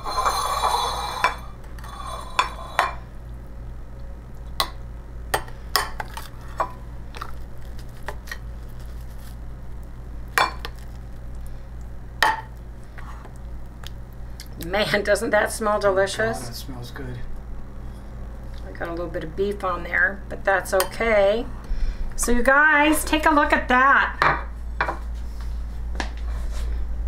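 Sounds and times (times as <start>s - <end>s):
spoon scraping ceramic dish: 0.0s - 3.0s.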